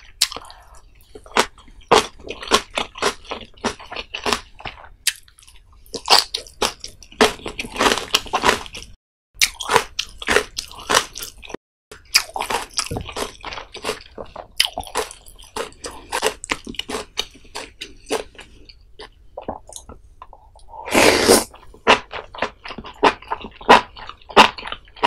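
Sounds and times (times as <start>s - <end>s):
crisp biting and crunching: 1.3s - 18.4s
wet chewing mouth sounds: 12.1s - 25.0s.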